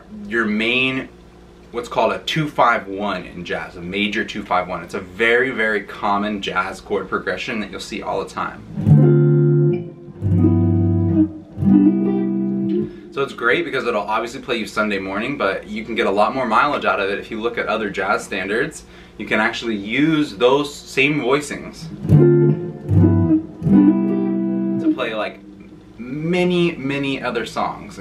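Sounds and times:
electric guitar chords: 8.7s - 13.2s, 21.9s - 26.1s.

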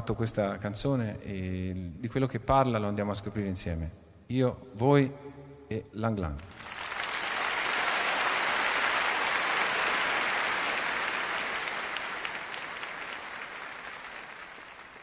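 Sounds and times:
audience applauding: 6.5s - 15.0s.

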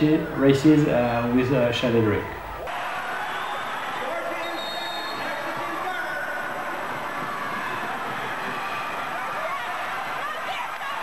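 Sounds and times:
crowd voices: 0.0s - 11.0s.

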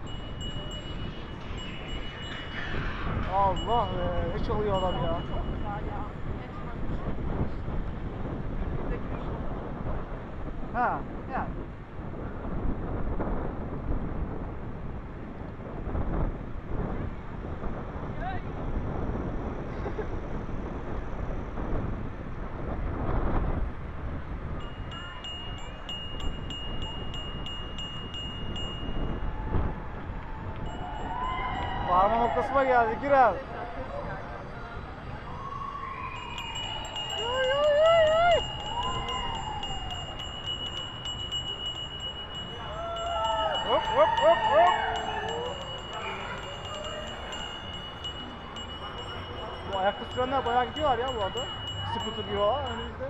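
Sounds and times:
high steady ringing tone: 0.0s - 7.3s, 24.5s - 33.2s, 34.8s - 53.0s
wind buffeting microphone: 0.0s - 53.0s.

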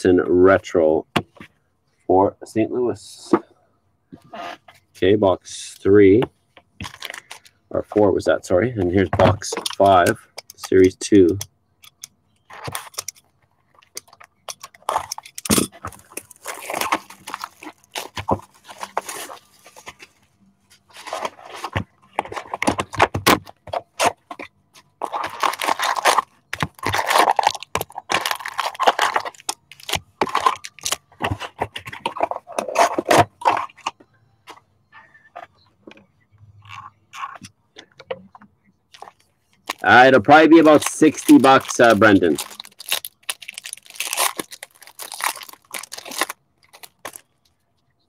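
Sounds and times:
plastic wrap crinkling and tearing: 15.8s - 19.8s, 25.0s - 31.1s, 39.0s - 47.3s
foil packs rustling: 15.8s - 20.2s, 25.0s - 33.6s, 39.7s - 47.3s.

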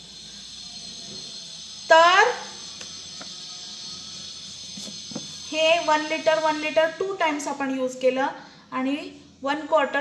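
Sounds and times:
faint high-pitched whine: 0.0s - 10.0s
woman speaking: 5.5s - 10.0s.

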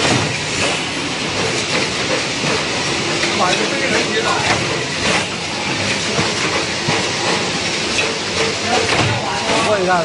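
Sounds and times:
packaging machine clattering: 0.0s - 10.0s.

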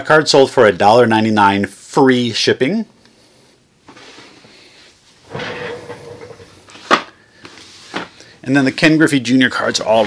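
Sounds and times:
office chair rolling rumble: 5.2s - 6.8s.

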